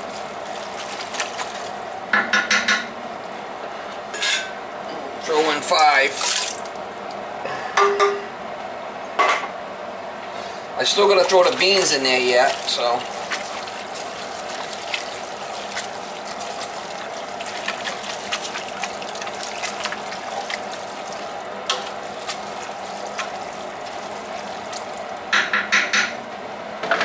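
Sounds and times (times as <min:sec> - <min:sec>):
spoon stirring thick mixture: 0:00.0 - 0:02.0, 0:10.8 - 0:25.3
steady background hum: 0:00.0 - 0:27.0.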